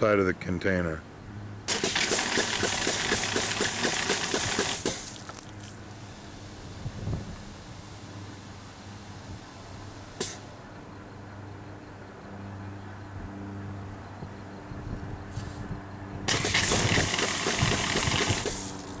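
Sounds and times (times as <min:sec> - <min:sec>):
steady low hum: 0:00.0 - 0:19.0
foam nozzle rushing hiss: 0:10.2 - 0:10.4
sharp click: 0:10.2 - 0:10.4.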